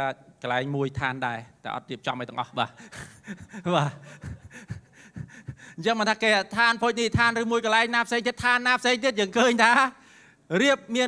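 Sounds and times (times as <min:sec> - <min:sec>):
man laughing breathily: 0:02.7 - 0:05.8.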